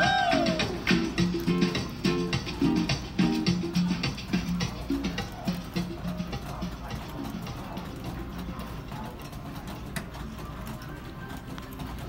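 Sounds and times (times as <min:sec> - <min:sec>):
people's voices: 0:00.0 - 0:11.9
faint music: 0:00.0 - 0:12.0.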